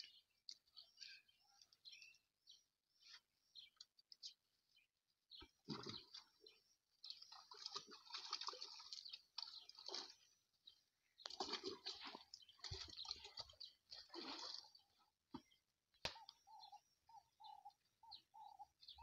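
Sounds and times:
mud squelching and splashing: 5.7s - 10.4s, 11.3s - 14.8s.

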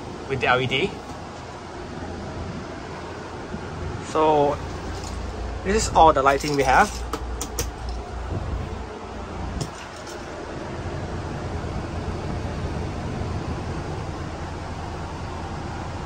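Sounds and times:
air conditioning running: 0.0s - 16.0s.

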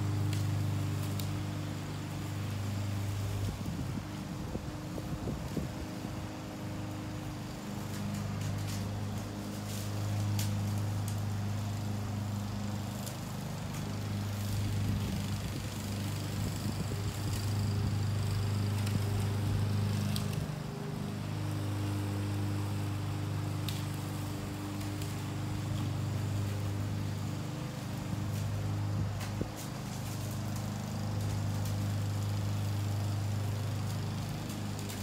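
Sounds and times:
lawn mower cutting grass: 0.0s - 35.0s.

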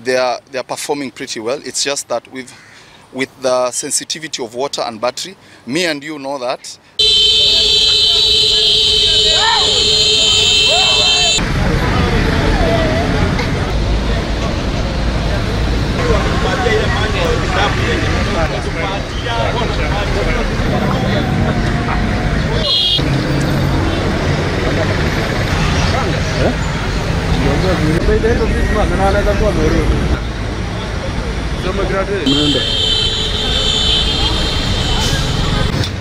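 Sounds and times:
traffic running: 7.0s - 36.0s
people talking: 7.4s - 23.0s, 30.9s - 32.8s.

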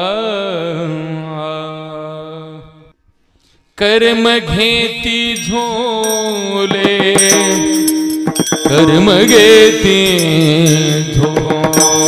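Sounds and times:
small hand cymbals: 5.4s - 12.0s
drum rhythm: 5.5s - 12.0s.

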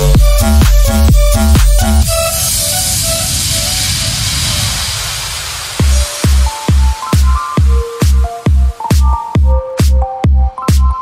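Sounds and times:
hissing noise sweep: 0.0s - 9.4s
electronic dance music: 0.0s - 11.0s.

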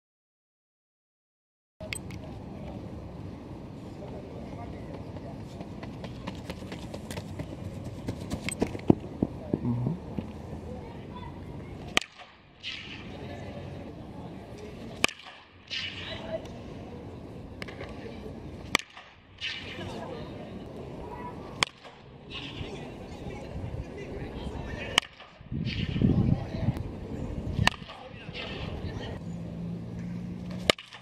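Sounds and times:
bat cracking against ball: 11.8s - 13.1s, 15.0s - 16.2s, 18.6s - 19.8s, 21.6s - 22.6s, 27.6s - 28.7s, 29.9s - 31.0s.

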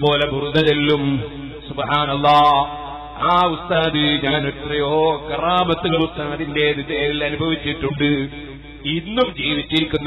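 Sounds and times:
man preaching in chant-like voice: 0.0s - 10.0s.

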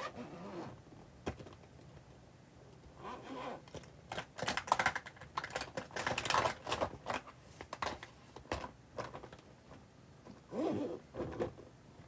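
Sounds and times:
cosmetics clicking and rustling: 3.7s - 9.5s.

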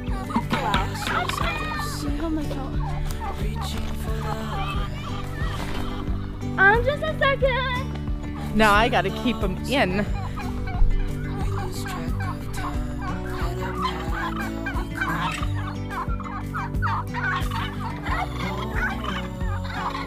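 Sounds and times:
turkeys gobbling: 0.0s - 20.0s.

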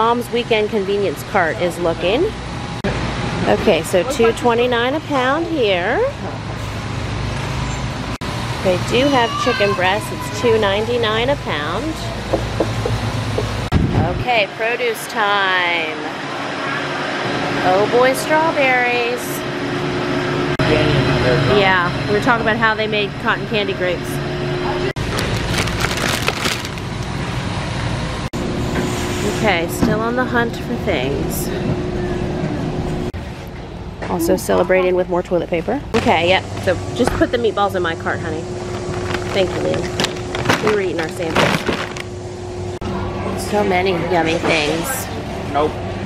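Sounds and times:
low hum and rumble: 0.0s - 46.0s
plastic packaging crackling: 25.0s - 27.2s, 38.6s - 42.1s.

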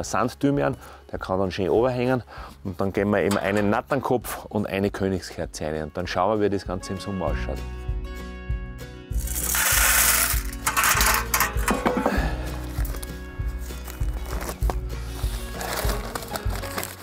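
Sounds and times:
background music with beat: 6.8s - 17.0s
gravel poured into metal tub: 9.1s - 17.0s.

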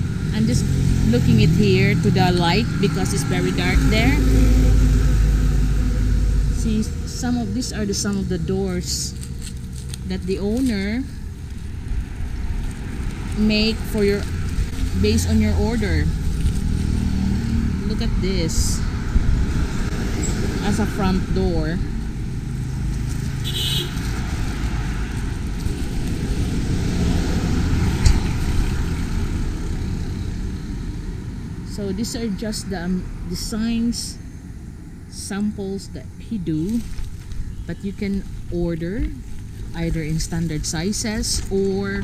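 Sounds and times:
low steady rumbling: 0.0s - 42.0s.

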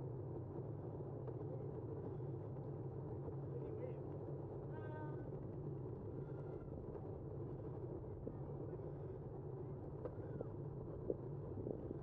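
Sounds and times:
wind: 0.0s - 12.0s.

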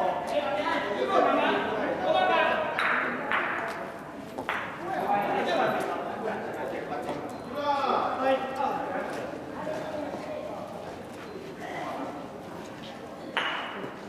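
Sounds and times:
voices echoing in a hall: 0.0s - 14.0s
mallet striking a ball: 13.4s - 13.8s.

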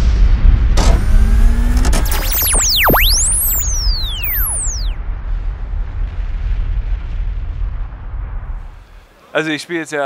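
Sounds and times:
faint rising tones: 1.0s - 5.0s
deep explosion-like rumble: 5.0s - 8.7s.

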